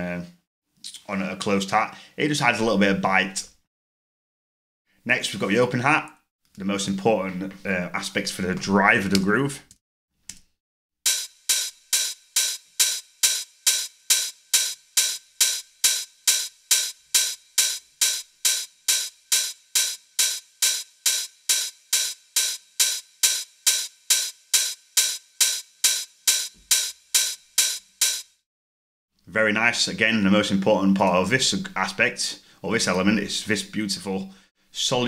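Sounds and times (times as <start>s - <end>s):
open hi-hat hits: 11.1s - 28.4s.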